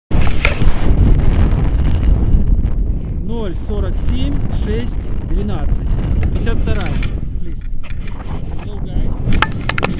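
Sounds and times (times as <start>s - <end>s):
wind buffeting microphone: 0.1s - 9.9s.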